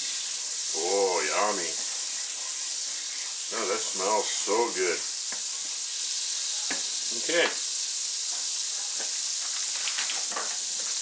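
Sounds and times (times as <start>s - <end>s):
butter sizzling in a frying pan: 0.0s - 11.0s.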